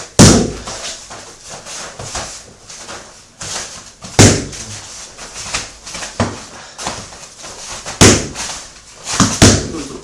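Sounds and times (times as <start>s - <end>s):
kick smacking pads: 0.0s - 0.9s, 4.0s - 4.6s, 5.5s - 7.1s, 7.8s - 9.9s.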